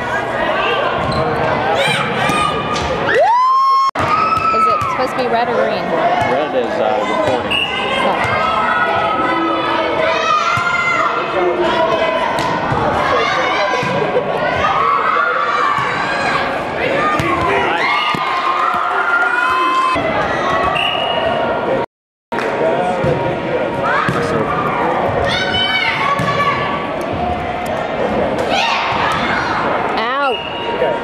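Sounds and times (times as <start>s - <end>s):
girls shouting in echoing gym: 1.7s - 5.3s, 7.0s - 20.8s, 25.2s - 26.8s, 28.5s - 30.4s.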